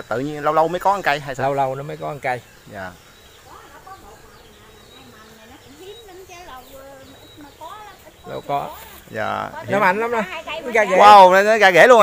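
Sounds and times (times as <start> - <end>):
flying insect buzzing: 0.0 - 12.0.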